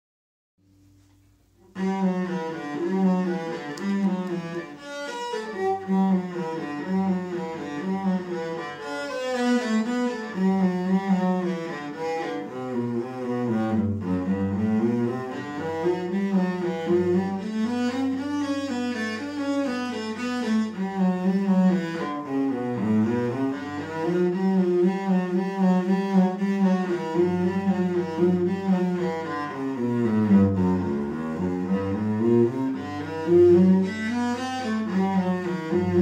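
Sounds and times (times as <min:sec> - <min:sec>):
bowed cello playing: 0:01.0 - 0:36.0.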